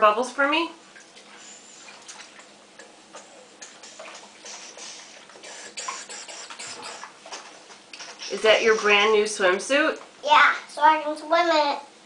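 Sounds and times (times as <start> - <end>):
bath water splashing and crackling: 0.8 - 10.2.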